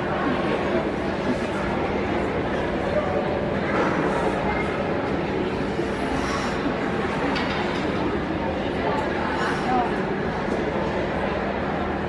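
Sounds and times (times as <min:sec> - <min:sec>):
faint voices: 0:00.0 - 0:12.0
ice arena rumbling background noise: 0:00.0 - 0:12.0.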